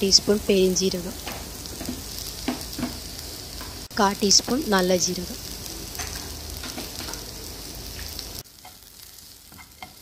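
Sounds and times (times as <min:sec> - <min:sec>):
onions sizzling in oil: 0:00.0 - 0:10.0.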